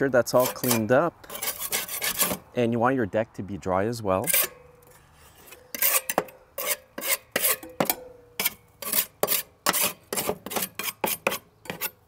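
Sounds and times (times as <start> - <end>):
putty knife scraping metal: 0.2 - 2.5, 4.2 - 12.0.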